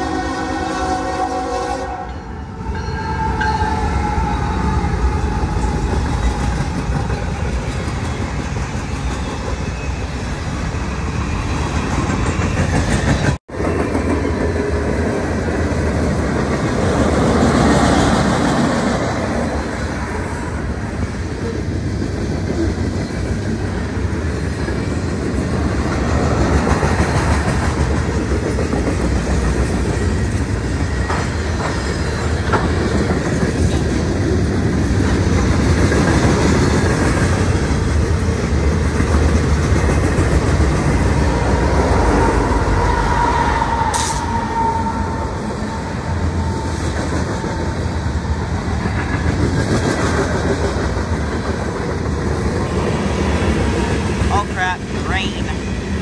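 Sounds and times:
freight train cars rolling past: 0.0 - 56.0.

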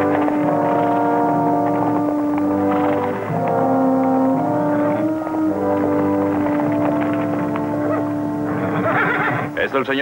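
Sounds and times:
held music chord: 0.0 - 8.8
hooves clopping: 0.0 - 10.0
horse whinnying: 7.7 - 9.6.

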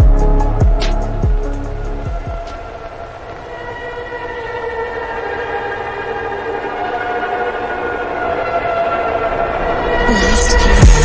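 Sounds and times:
held electronic chord: 0.0 - 11.0.

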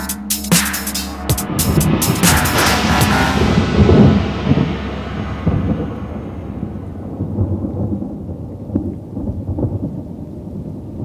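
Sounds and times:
electronic dance music: 0.0 - 4.0
rolling thunder rumble: 0.0 - 11.0.

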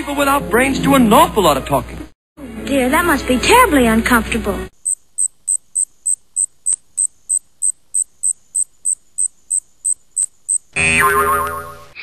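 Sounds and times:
cricket chirping: 4.8 - 10.8.

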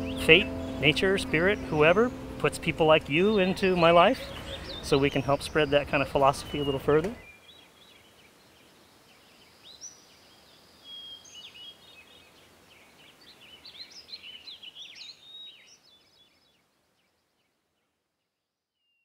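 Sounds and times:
birds chirping and singing: 0.0 - 17.5
faint outdoor hiss: 0.0 - 19.0.

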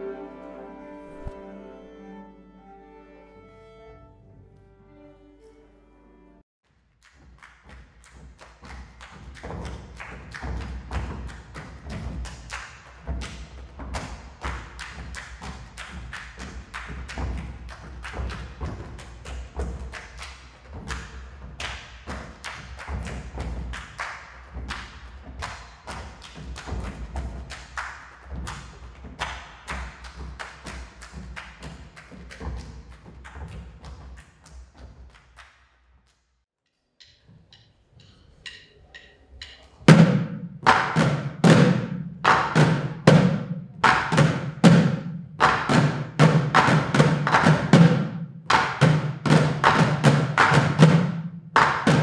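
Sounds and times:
percussion ensemble strikes: 7.0 - 34.2, 37.0 - 52.0.

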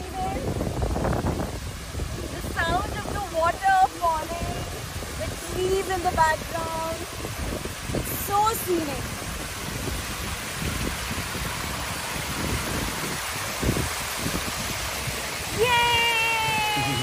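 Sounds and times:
water rushing over a weir: 0.0 - 17.0.

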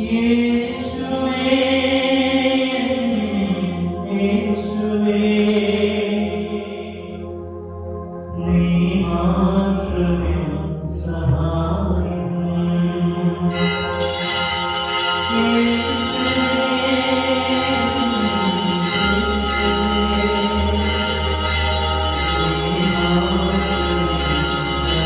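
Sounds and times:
chant-like devotional music: 0.0 - 25.0.

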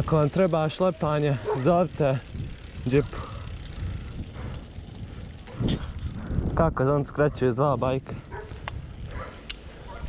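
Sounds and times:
bike tyres rumbling on asphalt: 0.0 - 10.0
wind on microphone: 2.2 - 10.0.

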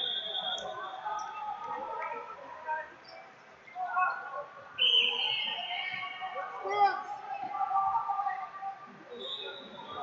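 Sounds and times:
voices of spectators and coaches: 0.0 - 10.0.

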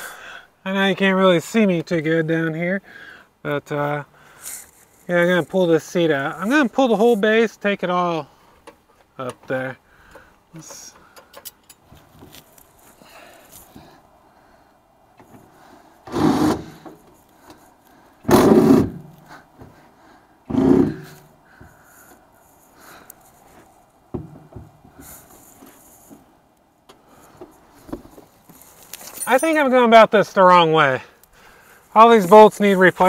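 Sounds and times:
power tool bursts: 16.1 - 16.8, 18.3 - 19.0.

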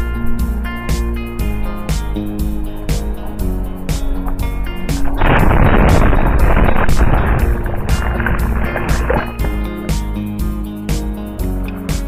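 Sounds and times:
music with steady beat: 0.0 - 12.0
whitewater rushing: 0.1 - 9.8.

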